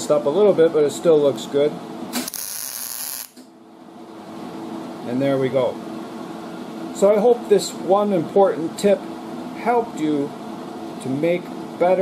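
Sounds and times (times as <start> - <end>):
steady low hum: 0.0 - 12.0
welder arc hissing: 2.1 - 3.4.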